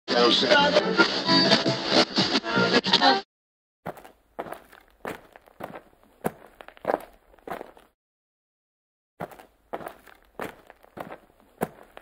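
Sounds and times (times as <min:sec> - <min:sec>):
footsteps: 0:03.9 - 0:07.9, 0:09.2 - 0:12.0.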